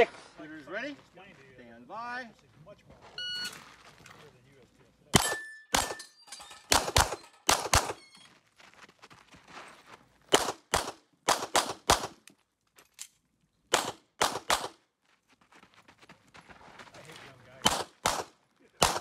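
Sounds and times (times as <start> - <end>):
pistol firing rapidly: 5.2 - 6.0, 6.7 - 8.0, 10.3 - 12.2, 13.7 - 14.8, 17.7 - 19.0.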